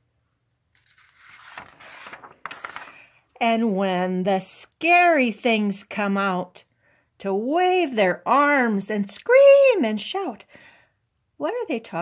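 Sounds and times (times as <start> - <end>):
paper page rustling: 0.2 - 3.2
crisp page flicks: 0.7 - 3.0.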